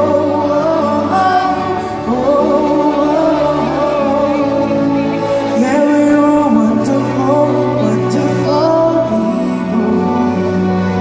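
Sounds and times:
band backing: 0.0 - 11.0
woman singing pop live: 0.0 - 11.0.

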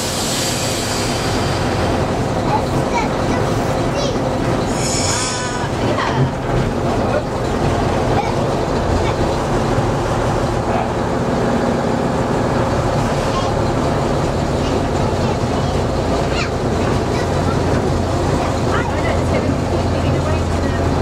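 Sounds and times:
diesel locomotive engine rumble: 0.0 - 21.0
wheel and rail noise: 0.0 - 21.0
high squeal: 4.6 - 5.8.

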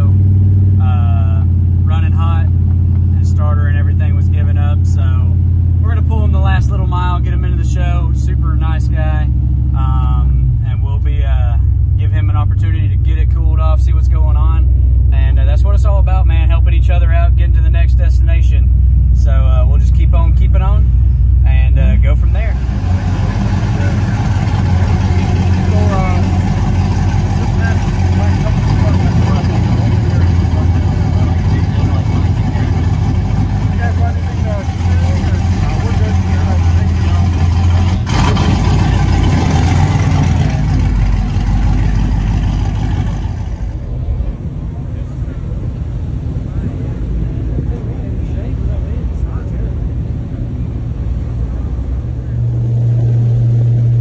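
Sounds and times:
engine and road drone in cab: 0.0 - 54.0
vehicle rumble: 0.0 - 54.0
wind: 0.0 - 54.0
man talking: 0.8 - 2.5, 3.1 - 39.2
people chatting: 0.8 - 2.5, 3.2 - 39.2, 43.9 - 50.8.

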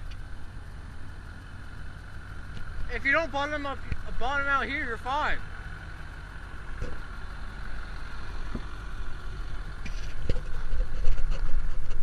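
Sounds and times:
truck engine rumbling at low revs: 0.0 - 12.0.

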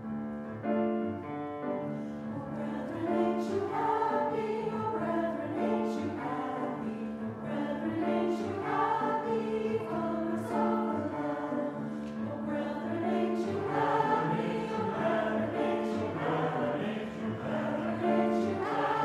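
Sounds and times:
choir singing: 1.9 - 19.0.

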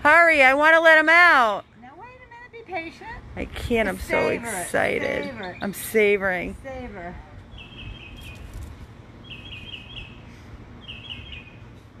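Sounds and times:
bird chirping: 7.5 - 10.2, 10.8 - 11.9.

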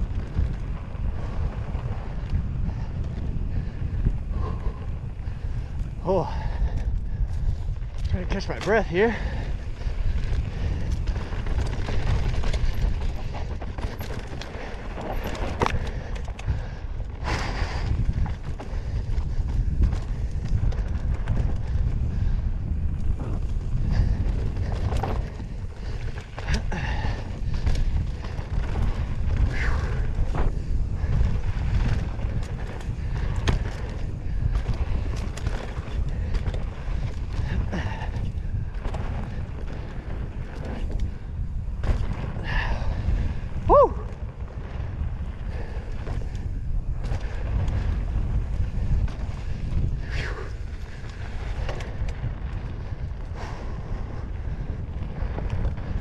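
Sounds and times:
bike knocking and rattling: 0.0 - 56.0
tyres on dirt: 0.0 - 56.0
wind on microphone: 0.0 - 56.0.

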